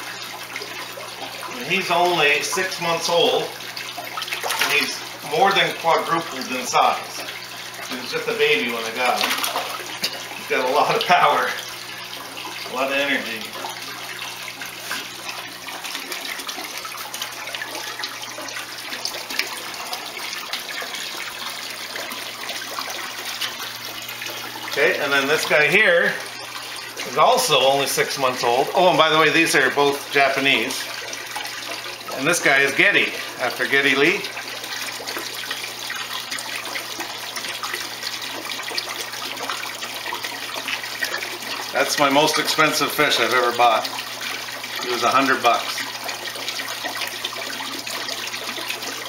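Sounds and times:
water sloshing and splashing: 0.0s - 49.0s
water trickling: 0.0s - 49.0s.

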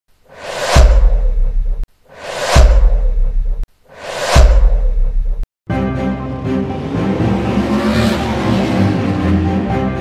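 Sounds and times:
rising whoosh: 0.3s - 5.4s
deep bass boom hit: 0.7s - 1.8s, 2.4s - 3.6s, 4.3s - 5.4s.

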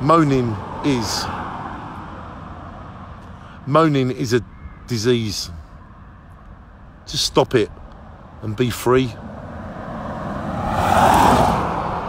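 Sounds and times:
car passing by: 0.0s - 3.4s, 9.2s - 12.0s.

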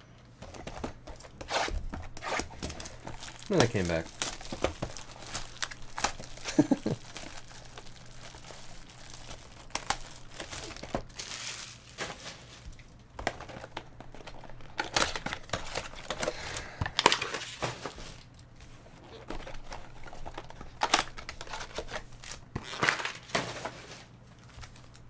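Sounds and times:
shrink wrap crinkling and tearing: 0.6s - 25.0s.

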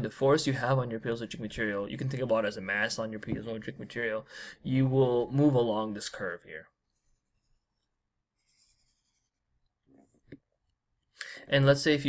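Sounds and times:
stylus scratching on tablet: 6.9s - 9.5s.

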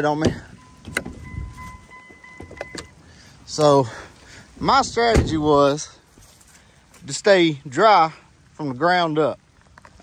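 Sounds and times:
door-open warning chime: 0.3s - 3.0s.

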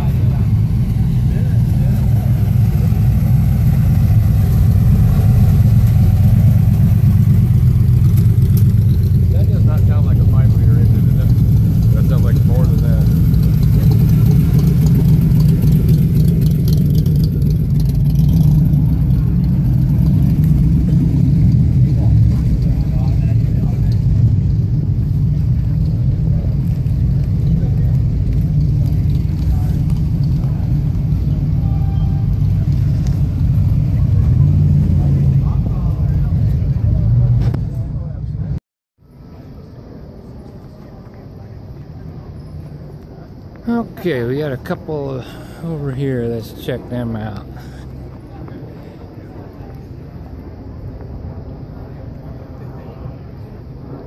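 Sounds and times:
car engines rumbling: 0.0s - 54.0s.

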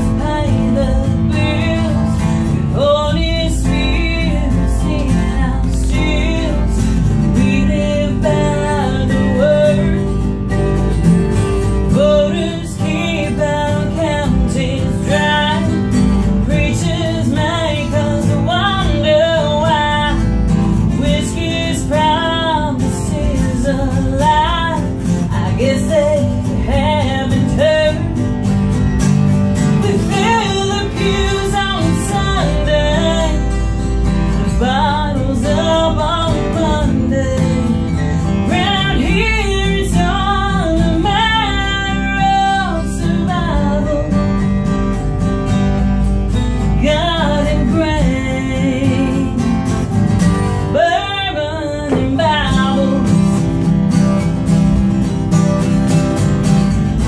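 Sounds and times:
acoustic guitar strumming: 0.0s - 57.0s
woman singing country song: 0.0s - 57.0s.

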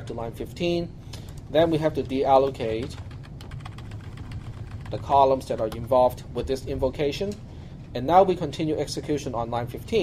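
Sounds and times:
typing on computer keyboard: 2.6s - 6.0s.

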